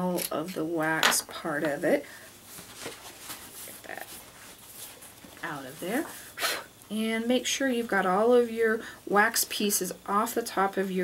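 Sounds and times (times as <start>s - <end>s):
hands rustling on table: 2.4s - 6.3s.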